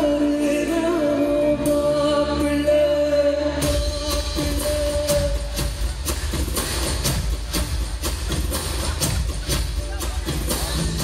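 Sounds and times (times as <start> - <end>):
live band playing instrumental: 0.0 - 11.0
steady drum beat: 3.6 - 11.0.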